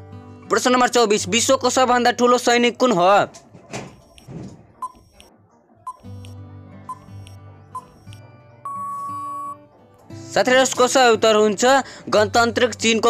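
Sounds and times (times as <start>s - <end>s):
soft background music: 0.0s - 13.0s
countdown timer beeps: 4.1s - 9.6s
long beep: 6.9s - 9.6s.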